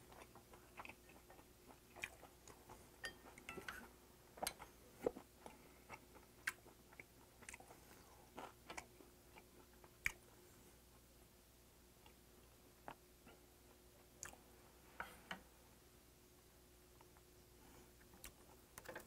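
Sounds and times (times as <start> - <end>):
close chewing: 0.0 - 3.8, 4.4 - 10.3.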